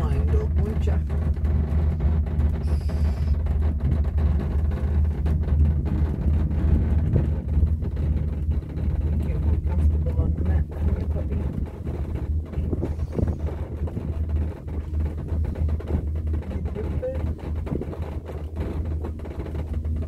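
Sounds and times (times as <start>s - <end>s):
brief knocks and rustles: 0.0s - 20.0s
gondola low rumble: 0.0s - 20.0s
wind buffeting microphone: 0.0s - 20.0s.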